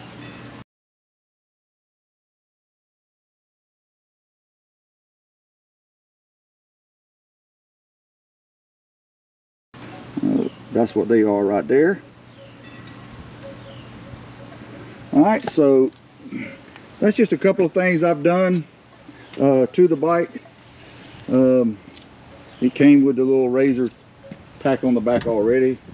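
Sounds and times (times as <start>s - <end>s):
low steady hum: 9.8s - 25.9s.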